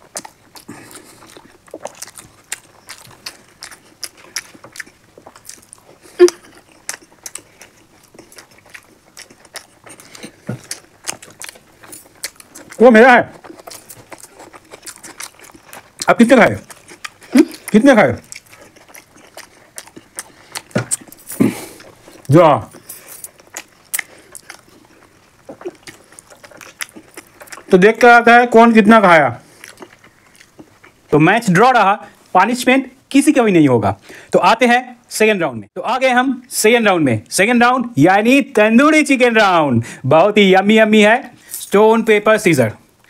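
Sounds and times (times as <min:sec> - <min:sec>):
wet chewing and mouth smacks: 0:00.0 - 0:28.1, 0:29.4 - 0:31.1
person speaking: 0:12.7 - 0:13.4, 0:17.3 - 0:18.3, 0:21.4 - 0:22.8.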